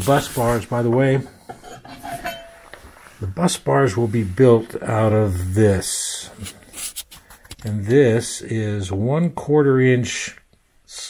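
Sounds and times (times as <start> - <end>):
faint metallic ring: 1.6 - 2.8.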